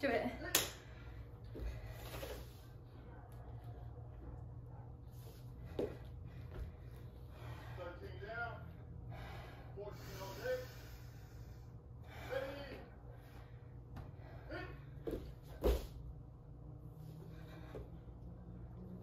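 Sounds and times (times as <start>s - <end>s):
woman breathing hard: 5.5s - 8.0s, 8.8s - 15.2s
body thumping on floor: 15.1s - 16.0s.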